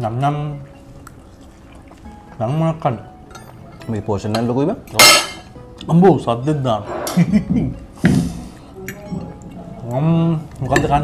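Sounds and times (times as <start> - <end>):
cutlery clinking on ceramic plate: 4.3 - 5.5
man talking: 9.8 - 11.0.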